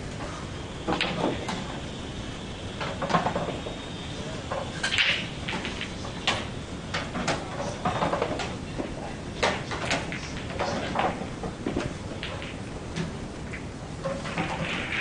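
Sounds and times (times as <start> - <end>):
billiard balls knocking: 0.8 - 1.8, 2.8 - 15.0.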